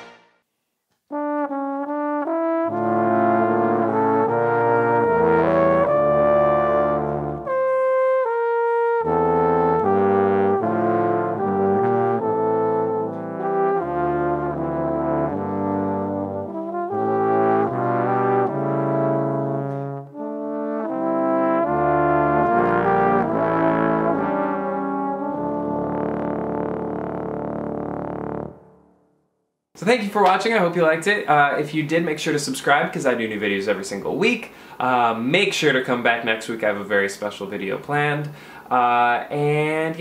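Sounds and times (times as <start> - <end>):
trombones playing in harmony: 0.0 - 0.3, 1.1 - 29.0.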